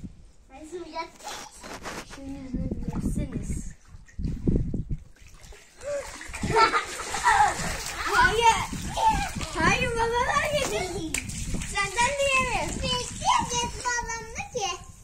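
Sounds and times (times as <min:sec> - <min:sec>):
water splashing on concrete: 0:01.2 - 0:14.4
children calling out: 0:05.8 - 0:11.0.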